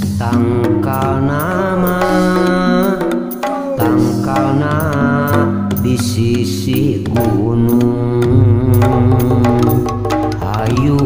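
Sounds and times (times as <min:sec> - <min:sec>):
drum strokes: 0:00.0 - 0:11.0
sustained pitched instrument notes: 0:08.2 - 0:10.1.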